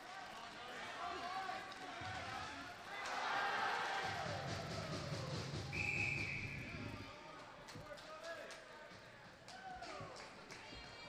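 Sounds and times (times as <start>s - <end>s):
referee's whistle: 5.7s - 6.9s.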